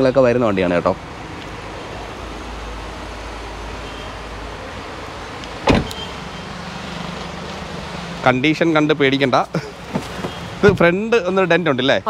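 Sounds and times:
car door shutting: 5.5s - 6.2s, 9.7s - 11.0s.

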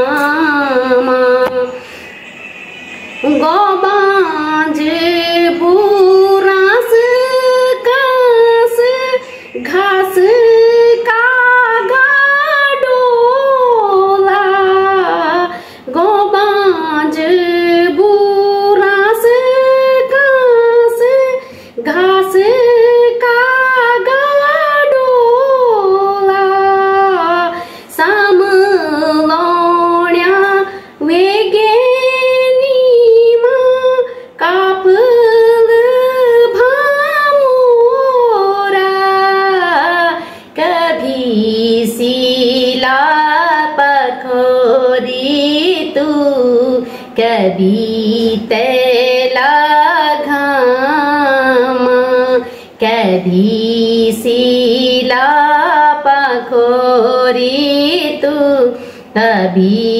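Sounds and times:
woman singing unaccompanied: 0.0s - 1.9s, 3.2s - 59.9s.

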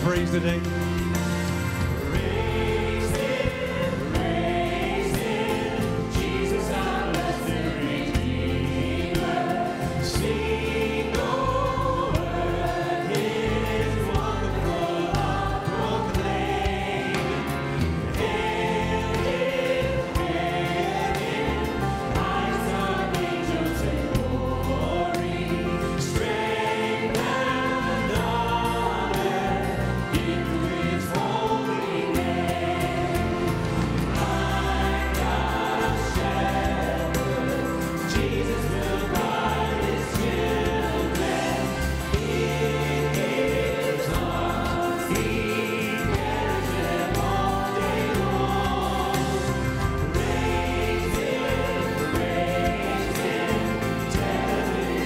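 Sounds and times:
drums: 0.0s - 55.0s
keyboards: 0.0s - 55.0s
voices singing together: 0.0s - 55.0s.

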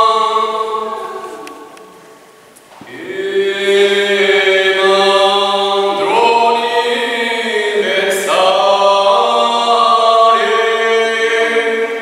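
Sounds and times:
men singing a hymn in harmony: 0.0s - 1.8s, 2.8s - 12.0s.

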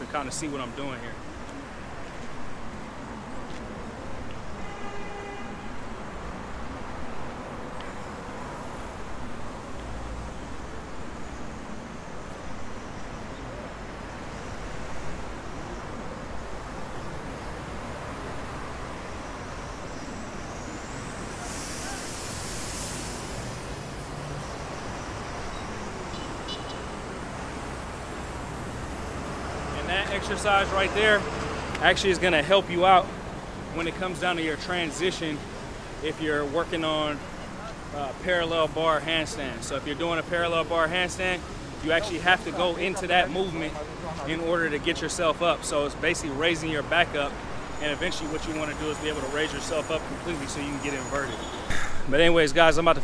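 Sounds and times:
road traffic noise: 0.0s - 53.0s
car horn toot: 4.6s - 5.8s, 26.1s - 27.0s
vehicle air hiss: 20.6s - 25.0s, 51.3s - 52.2s.

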